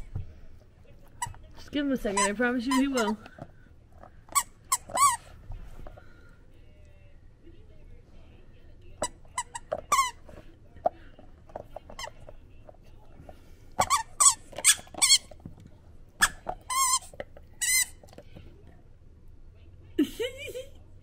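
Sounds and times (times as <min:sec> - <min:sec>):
toy squeaker squeaking: 0:02.0 - 0:03.5, 0:04.2 - 0:05.3, 0:09.0 - 0:10.4, 0:11.5 - 0:12.4, 0:13.8 - 0:15.4, 0:16.2 - 0:18.2.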